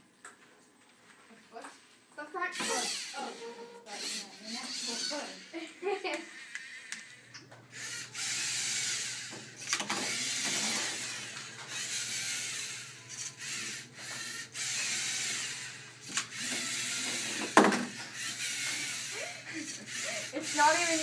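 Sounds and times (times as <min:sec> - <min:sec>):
robot motors and gears whirring: 0:02.5 - 0:05.5, 0:06.4 - 0:21.0.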